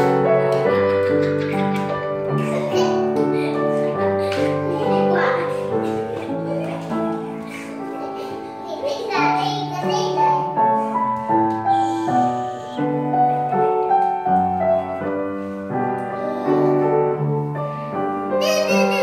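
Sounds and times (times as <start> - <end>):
upright piano melody: 0.0 - 19.0.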